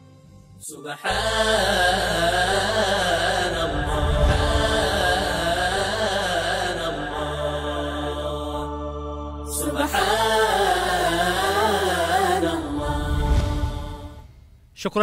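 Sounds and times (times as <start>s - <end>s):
person chanting melodically: 0.9s - 8.7s
low sustained drone: 1.3s - 8.6s.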